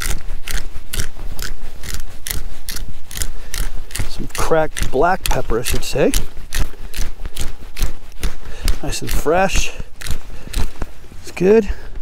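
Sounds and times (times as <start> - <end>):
pepper grinder grinding clicks: 0.0 - 9.2.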